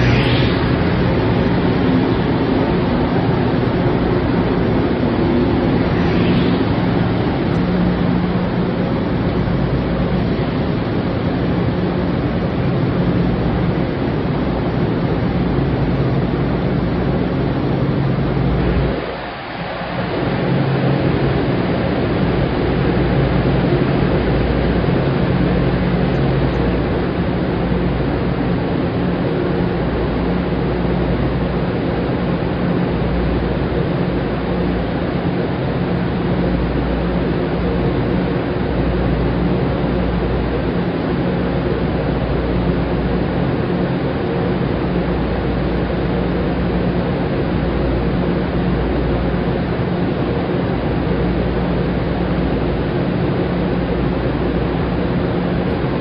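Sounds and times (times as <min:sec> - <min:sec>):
low droning hum: 0:00.0 - 0:56.0.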